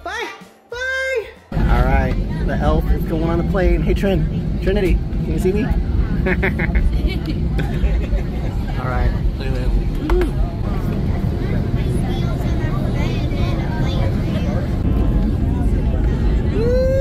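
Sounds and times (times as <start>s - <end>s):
jet engines rumbling in cabin: 1.5s - 17.0s.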